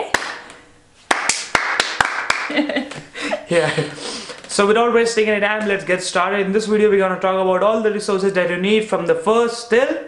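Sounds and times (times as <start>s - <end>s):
hand claps: 0.0s - 3.1s
laughter: 2.4s - 4.0s.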